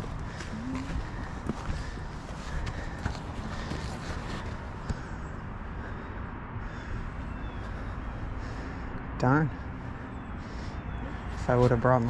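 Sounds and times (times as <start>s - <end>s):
footsteps on sandy rock: 0.0s - 5.0s.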